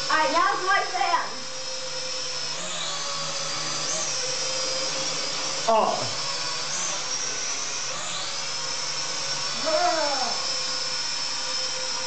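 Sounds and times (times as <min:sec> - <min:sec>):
toy drone high whine: 0:00.0 - 0:12.0.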